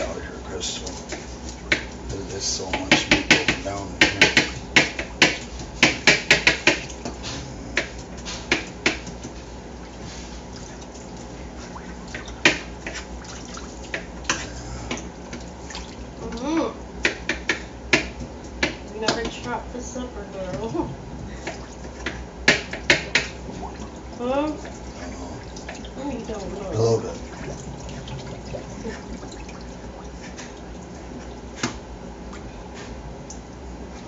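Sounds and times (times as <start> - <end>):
water sloshing and splashing: 0.0 - 17.3, 18.0 - 34.0
clicks and clatters in sink: 0.8 - 7.2, 17.0 - 19.6
sharp knocks: 2.7 - 9.1.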